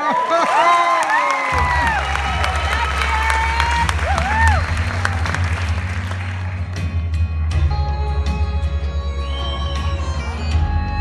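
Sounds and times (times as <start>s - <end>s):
audience cheering and applauding: 0.0s - 7.2s.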